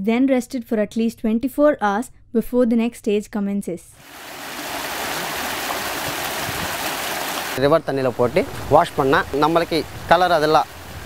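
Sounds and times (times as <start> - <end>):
river water rushing over stones: 4.0 - 7.6, 8.4 - 11.0.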